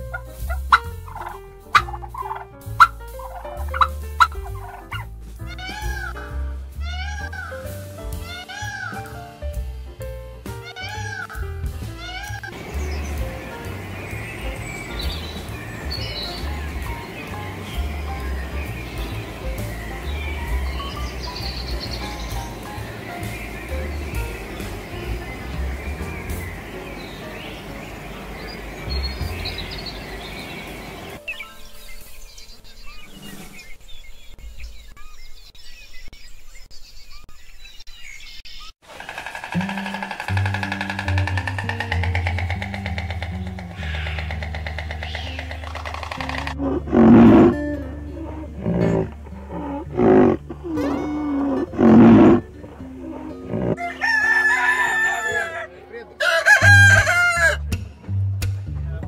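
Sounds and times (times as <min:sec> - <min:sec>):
background music: 0:00.0 - 0:34.0, 0:39.0 - 0:59.0
loud animal calls: 0:08.3 - 0:09.0, 0:12.0 - 0:31.2, 0:38.8 - 0:57.6
rooster crowing: 0:53.7 - 0:57.6.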